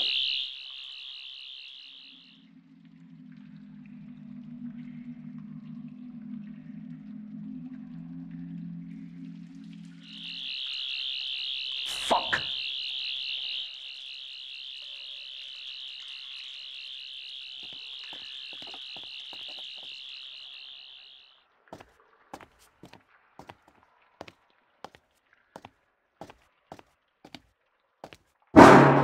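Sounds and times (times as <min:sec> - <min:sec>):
low steady drone: 0:02.4 - 0:10.1
sharp hit: 0:28.6 - 0:29.0.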